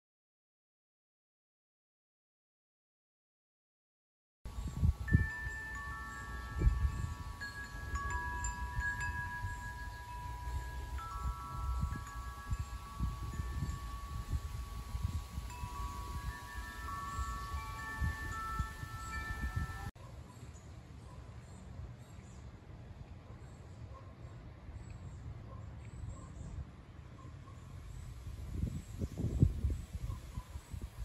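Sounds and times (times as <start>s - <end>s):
metal tube wind chimes ringing: 4.5s - 20.0s.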